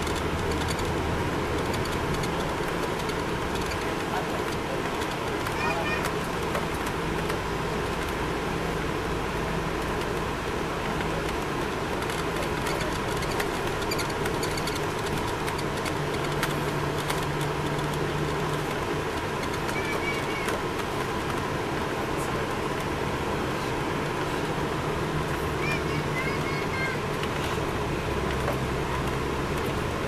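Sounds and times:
coach engine and road drone: 0:00.0 - 0:30.0.

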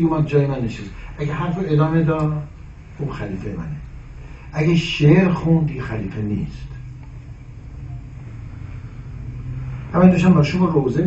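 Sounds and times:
steady low hum with rumble: 0:00.0 - 0:11.0.

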